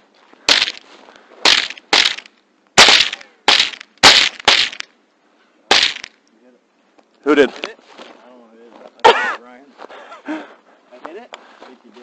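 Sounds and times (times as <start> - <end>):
gunshots: 0.5 - 0.8, 1.4 - 4.9, 5.7 - 6.1.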